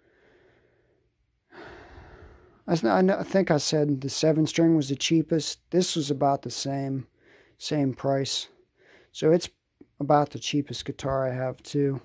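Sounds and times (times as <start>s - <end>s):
man drawing in breath: 0.0s - 2.6s.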